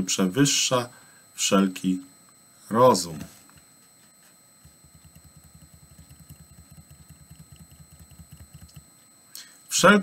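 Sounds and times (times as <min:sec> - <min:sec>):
small motor running: 0:04.9 - 0:08.8.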